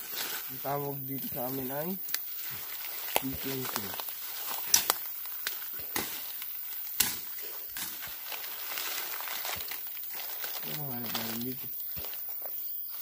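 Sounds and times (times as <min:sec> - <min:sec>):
footsteps through dry leaves: 0:00.0 - 0:13.0
person speaking: 0:00.5 - 0:02.1, 0:03.2 - 0:04.0, 0:10.6 - 0:11.8
twigs snapping: 0:02.0 - 0:12.5.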